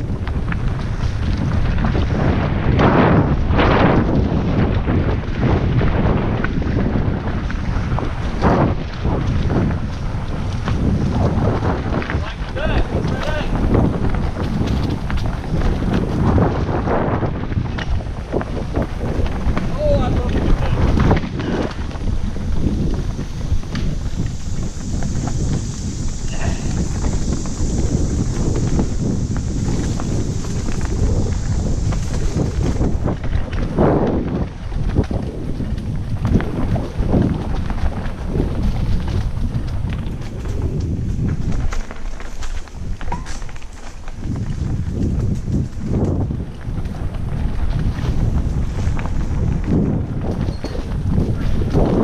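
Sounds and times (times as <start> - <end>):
bike knocks and rattles: 0.0 - 25.8, 26.7 - 52.0
wind buffeting microphone: 0.0 - 52.0
steady high hiss: 22.0 - 33.1.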